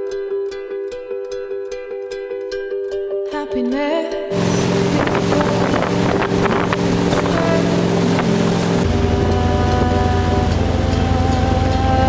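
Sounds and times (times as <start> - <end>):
boat engine running: 4.3 - 12.0
wake water rushing: 4.4 - 12.0
wind buffeting microphone: 4.4 - 12.0.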